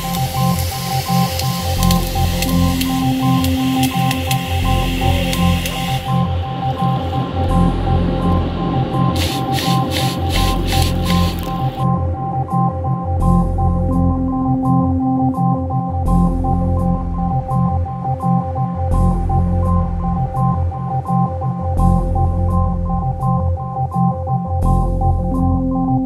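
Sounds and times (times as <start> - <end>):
water spraying from hose nozzle: 0.0 - 6.2, 9.1 - 11.8
background music with steady beat: 0.0 - 26.0.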